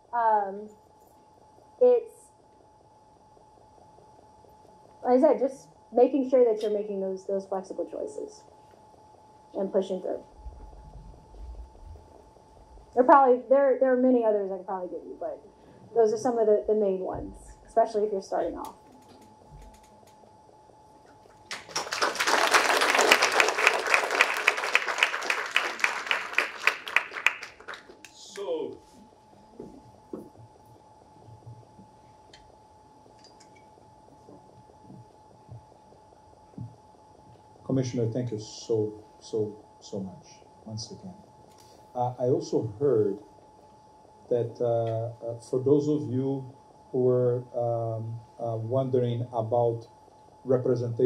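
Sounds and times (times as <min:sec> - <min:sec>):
audience applauding: 0:21.2 - 0:28.5.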